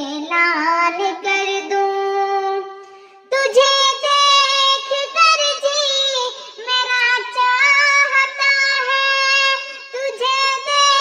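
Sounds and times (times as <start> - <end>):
high voice singing devotional song: 0.0 - 11.0.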